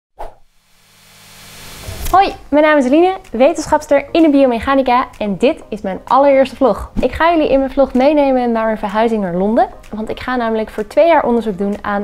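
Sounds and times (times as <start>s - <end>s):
whoosh: 0.2s - 2.5s.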